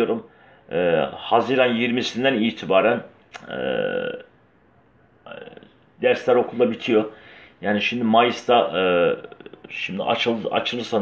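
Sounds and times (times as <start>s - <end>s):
man breathing in: 7.1s - 7.6s.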